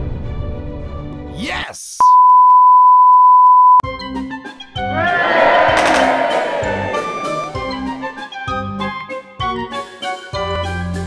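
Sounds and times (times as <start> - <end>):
television test tone beep: 2.0 - 3.8
background music: 3.8 - 11.0.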